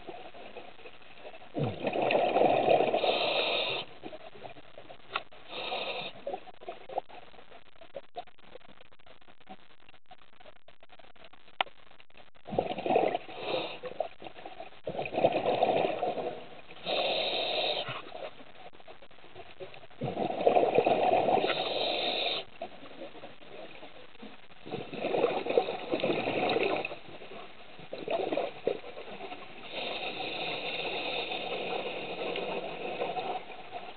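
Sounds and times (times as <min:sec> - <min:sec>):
faint crackle: 0:00.0 - 0:33.9.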